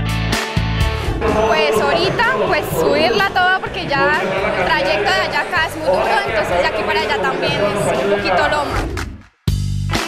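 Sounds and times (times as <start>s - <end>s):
background music: 0.0s - 10.0s
crowd chatter: 1.2s - 8.9s
woman talking: 1.3s - 8.8s.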